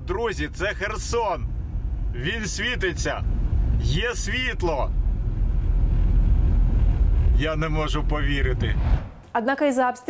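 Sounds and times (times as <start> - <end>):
car road and engine noise: 0.0 - 9.2.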